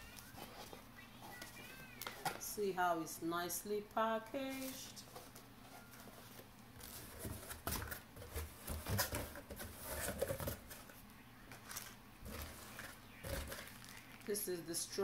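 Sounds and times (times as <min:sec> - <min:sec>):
cardboard packaging rustling: 0:00.0 - 0:02.5, 0:04.4 - 0:15.0.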